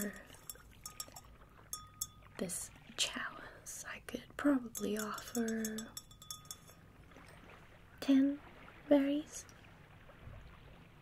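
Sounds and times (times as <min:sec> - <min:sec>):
faint high metallic ring: 0:00.0 - 0:02.4, 0:04.6 - 0:06.9
taps and clinks on metal chalice: 0:00.0 - 0:02.4, 0:04.6 - 0:06.8.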